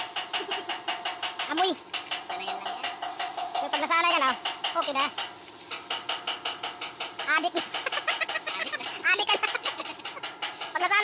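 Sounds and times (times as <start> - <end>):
paint spray gun hissing: 0.0 - 11.0
rapid ticking: 0.0 - 11.0.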